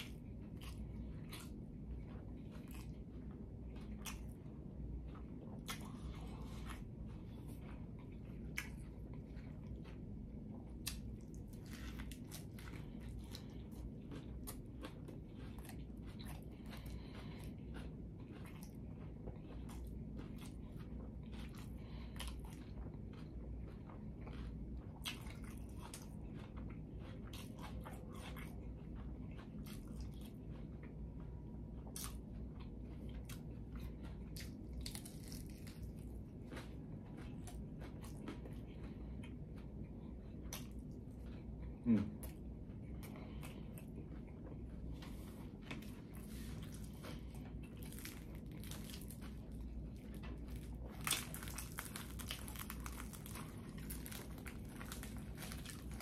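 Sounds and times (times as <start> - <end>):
chewing and biting: 0.0 - 56.0
crisp shell crunching: 34.4 - 37.4, 45.7 - 56.0.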